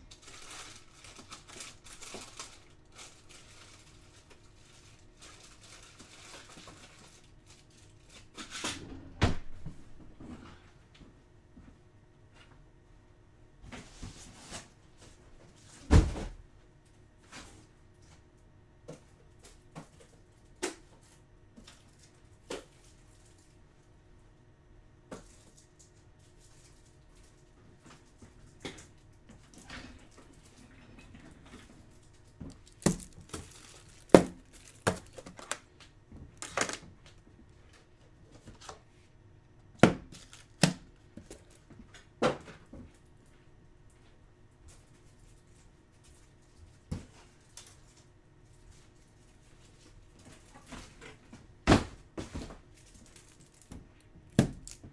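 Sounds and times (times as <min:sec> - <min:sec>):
plastic cases clacking on a table: 0:32.4 - 0:35.6.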